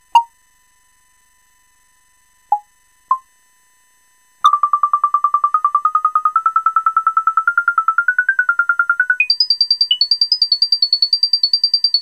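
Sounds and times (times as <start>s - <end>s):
electronic synth beeps: 4.4s - 10.2s.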